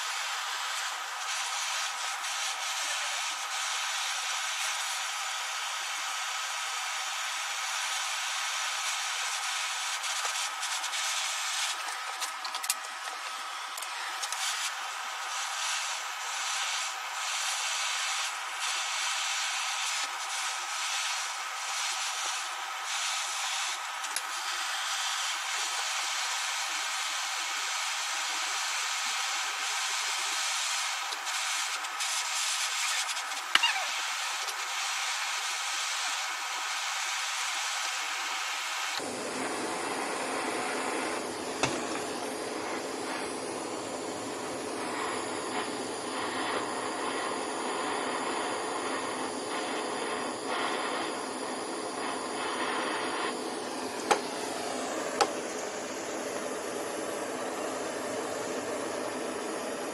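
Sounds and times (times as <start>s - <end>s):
gas torch hissing: 0.0s - 59.9s.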